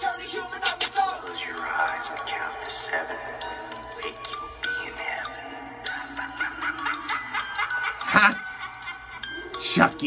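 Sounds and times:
backing music: 0.0s - 10.0s.

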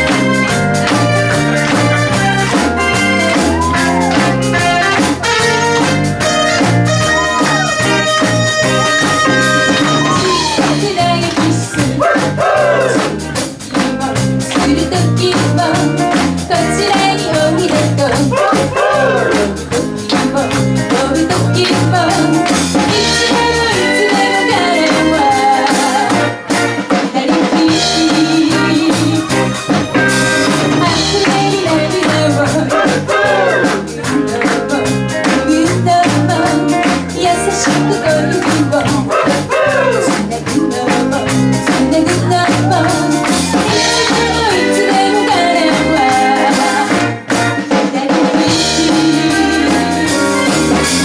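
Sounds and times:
drum kit: 0.0s - 51.0s
live pop band playing: 0.0s - 51.0s
woman singing lead: 9.6s - 50.8s.

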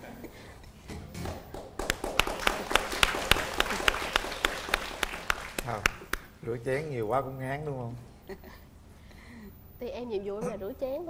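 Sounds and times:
hands clapping: 1.1s - 6.3s
laughter: 8.3s - 8.7s.

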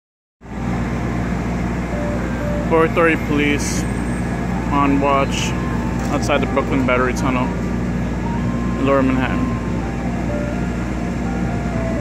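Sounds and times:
low rumble of street traffic: 0.4s - 12.0s.

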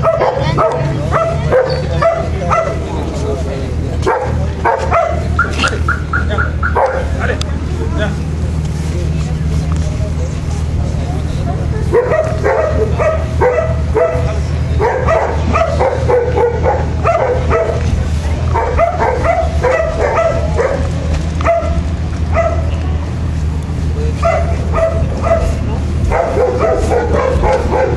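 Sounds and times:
dog yapping: 0.0s - 2.8s, 6.8s - 7.1s, 11.9s - 17.8s, 18.5s - 22.7s, 24.2s - 27.9s.

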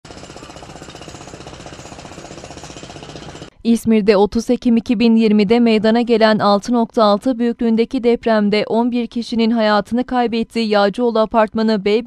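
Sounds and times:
machinery hammering rattle: 0.0s - 3.5s.

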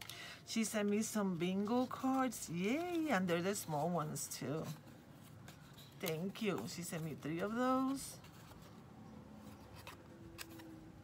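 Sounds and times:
paper cards rustling: 0.0s - 11.0s.

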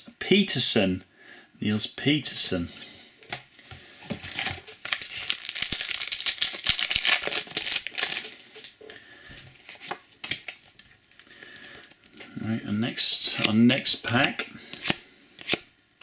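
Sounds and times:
foil wrapper crinkling and tearing: 4.2s - 8.8s.

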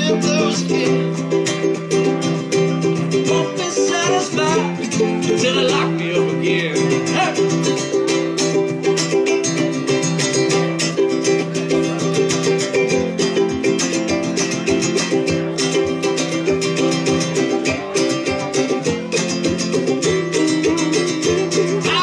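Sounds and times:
ukuleles strumming chords: 0.0s - 22.0s.

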